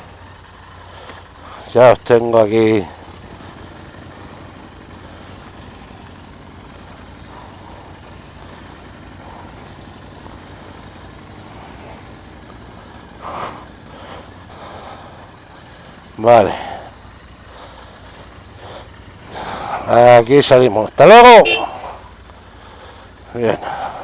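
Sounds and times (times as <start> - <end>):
motorcycle engines idling: 0.0 - 24.0.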